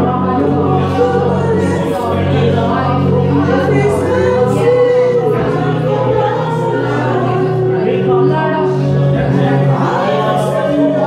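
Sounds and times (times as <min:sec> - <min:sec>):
sustained low notes: 0:00.0 - 0:11.0
voices singing together: 0:00.0 - 0:11.0.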